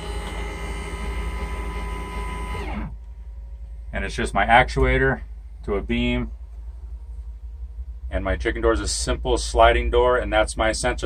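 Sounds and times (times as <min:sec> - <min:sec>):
electric actuator motor whining: 0:00.0 - 0:03.1.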